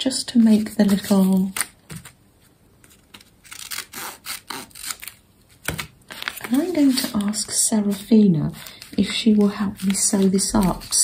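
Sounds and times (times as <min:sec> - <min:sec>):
scissors cutting paper: 0:03.1 - 0:11.0.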